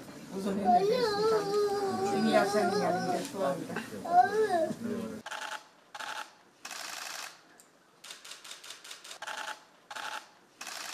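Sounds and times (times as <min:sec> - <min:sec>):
camera shutters clicking: 0:05.3 - 0:07.4, 0:08.0 - 0:10.9.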